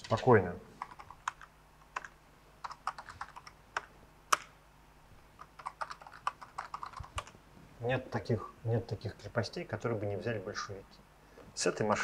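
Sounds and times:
typing on computer keyboard: 0.8s - 4.5s, 5.4s - 7.4s.

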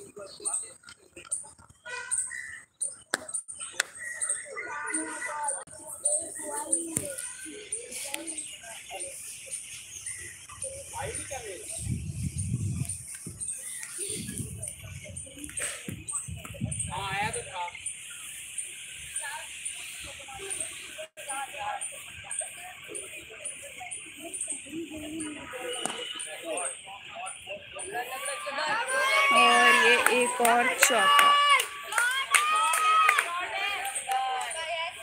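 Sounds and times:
distant voices: 0.0s - 35.0s
low microphone rumbles: 11.8s - 13.5s.

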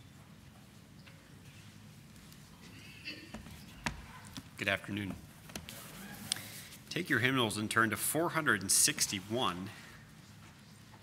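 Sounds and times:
low steady hum and hiss: 0.0s - 11.0s.

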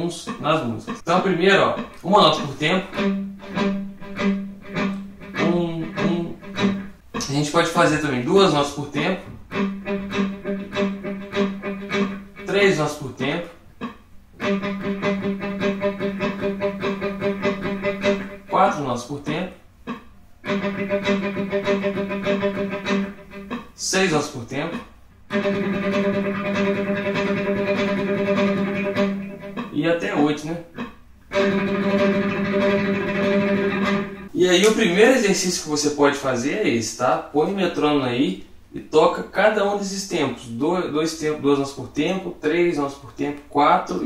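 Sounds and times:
person speaking: 0.0s - 3.0s, 5.3s - 9.5s, 12.4s - 13.9s, 18.0s - 20.0s, 23.5s - 25.0s, 29.5s - 30.9s, 34.3s - 44.0s
electric guitar picking one note: 1.7s - 7.4s, 9.2s - 12.5s, 14.4s - 18.6s, 19.9s - 23.8s, 25.3s - 29.8s, 30.7s - 34.3s.

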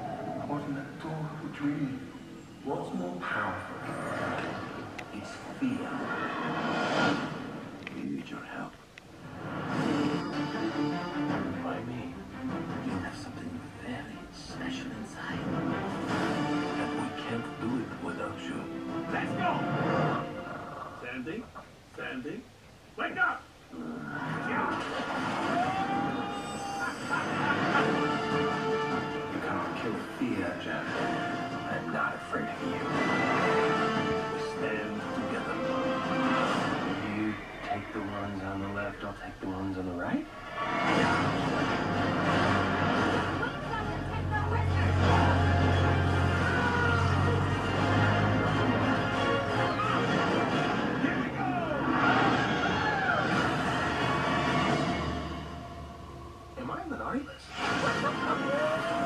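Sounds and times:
trailer music: 9.2s - 20.9s, 25.0s - 37.4s, 40.4s - 56.7s
falling whistle-like tone: 25.4s - 27.3s
rumbling action noise: 40.3s - 56.3s.

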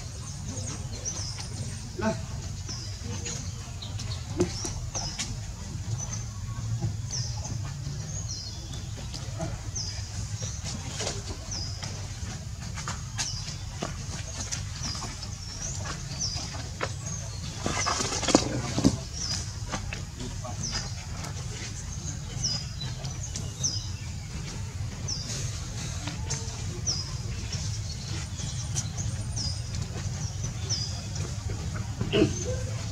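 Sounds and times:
bird chirping: 0.0s - 32.9s.

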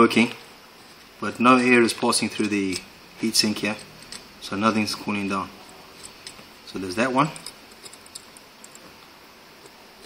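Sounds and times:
background hiss: 0.0s - 10.0s
fingers handling metal heatsink: 0.1s - 9.0s.

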